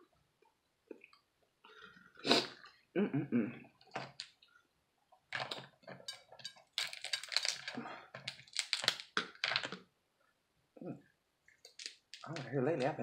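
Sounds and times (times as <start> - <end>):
closed-mouth mm: 2.2 - 3.6
crab shell cracking: 5.3 - 9.8, 11.6 - 12.4.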